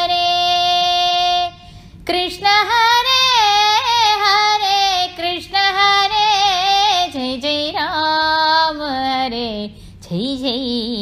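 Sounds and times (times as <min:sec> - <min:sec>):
woman singing devotional song: 0:00.0 - 0:11.0.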